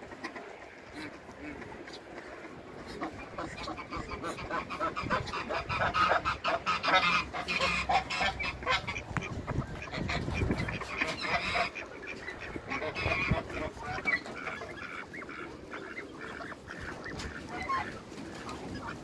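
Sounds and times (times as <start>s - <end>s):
ducks quacking: 0.0s - 19.0s.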